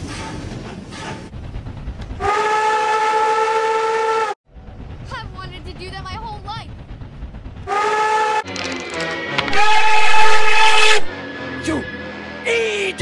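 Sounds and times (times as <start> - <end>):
steam locomotive whistle blowing: 2.2 - 4.4, 9.5 - 12.2.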